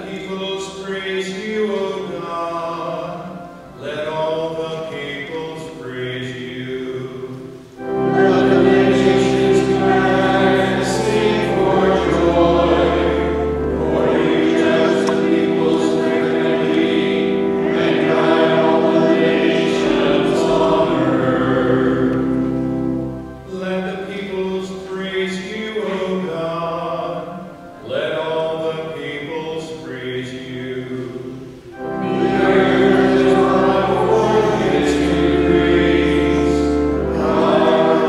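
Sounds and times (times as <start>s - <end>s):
single voice singing: 0.0s - 22.3s, 23.5s - 38.0s
congregation singing: 0.0s - 38.0s.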